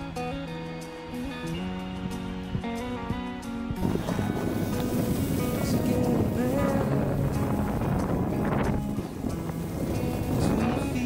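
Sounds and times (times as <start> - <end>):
background music: 0.0 - 11.0
wind noise on microphone: 0.0 - 11.0
skis sliding on snow: 3.8 - 11.0.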